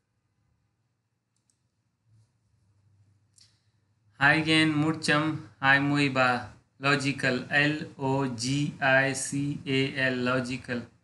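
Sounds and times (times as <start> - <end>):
computer mouse clicks: 1.3 - 1.8.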